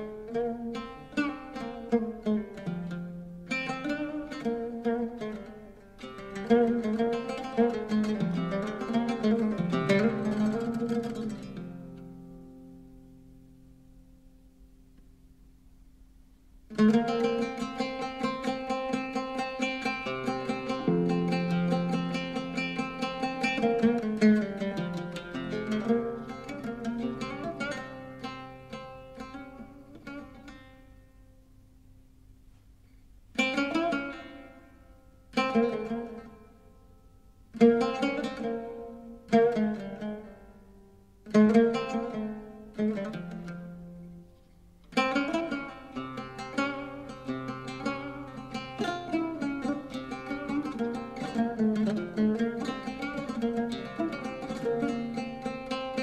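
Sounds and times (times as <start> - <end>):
oud plucked with plectrum: 0.0 - 56.0.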